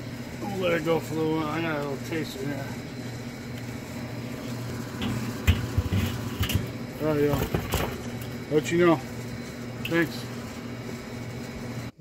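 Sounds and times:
steady low hum: 0.0s - 12.0s
smoker lid knocks and thumps: 5.0s - 8.2s.

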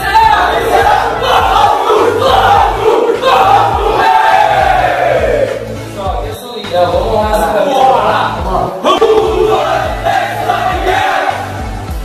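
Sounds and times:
men shouting war cry: 0.0s - 5.7s, 7.5s - 11.6s.

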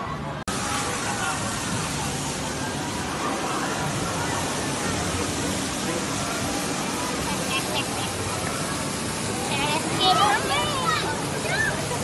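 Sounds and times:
water rushing on rapids: 0.4s - 12.0s
water cascade pouring: 0.5s - 12.0s.

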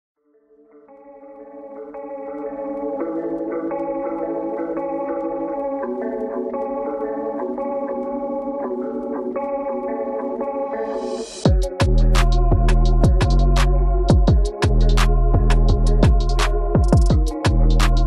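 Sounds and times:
sustained synth chords: 11.5s - 18.0s.

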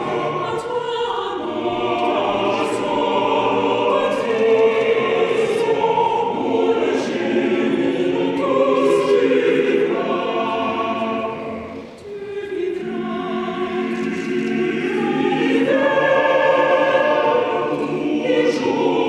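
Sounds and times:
choir singing an anthem: 0.0s - 19.0s.

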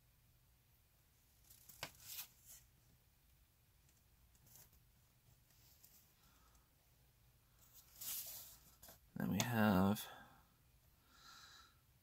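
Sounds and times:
paper rustling and crinkling: 1.4s - 2.7s, 7.7s - 9.0s.

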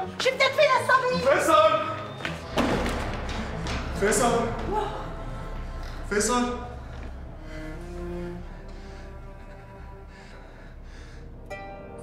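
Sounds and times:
dramatic score with low tones: 0.0s - 12.0s.

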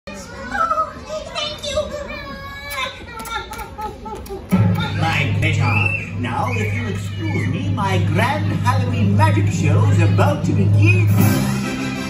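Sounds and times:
young children calling out: 0.1s - 4.5s.

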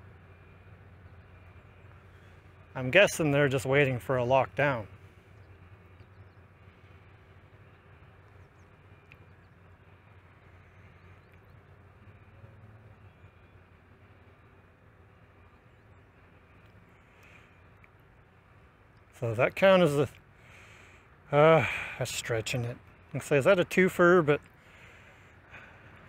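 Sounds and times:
low machinery hum: 0.0s - 26.0s.

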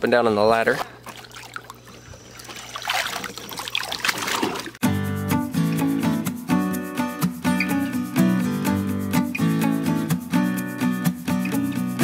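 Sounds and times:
pool water splashing and trickling: 0.9s - 4.8s
background music: 4.8s - 12.0s.

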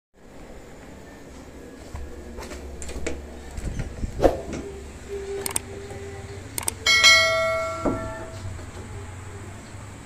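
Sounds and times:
quick clicks: 5.4s - 5.7s, 6.6s - 6.8s
notification bell ding: 6.8s - 8.4s.

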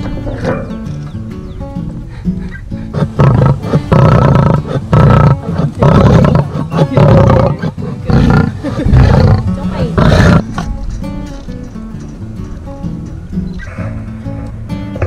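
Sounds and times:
lioness roaring: 2.8s - 10.6s.

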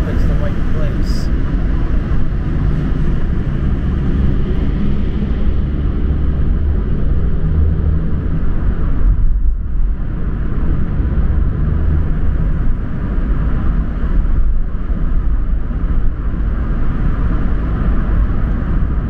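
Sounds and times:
car engine: 0.0s - 19.0s.

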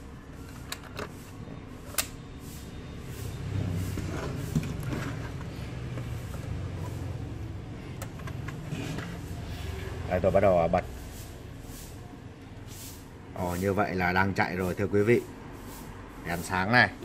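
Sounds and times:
laptop knocking and rubbing on table: 3.9s - 7.0s.

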